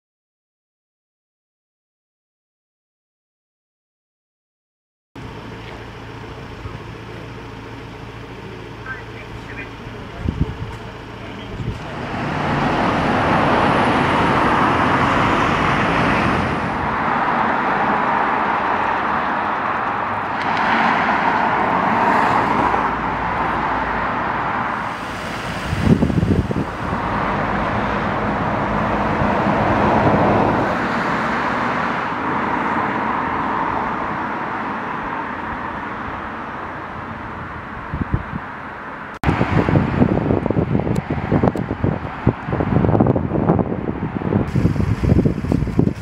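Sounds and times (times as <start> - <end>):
road traffic passing: 5.2 - 46.0.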